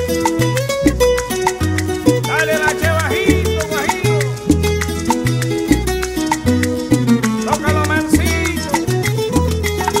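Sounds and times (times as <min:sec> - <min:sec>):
latin dance music with bass and percussion: 0:00.0 - 0:10.0.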